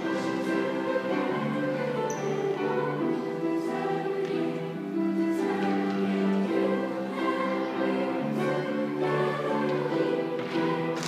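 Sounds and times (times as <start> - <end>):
musical accompaniment: 0.0 - 11.0
vocal group singing a pop song: 0.0 - 11.0.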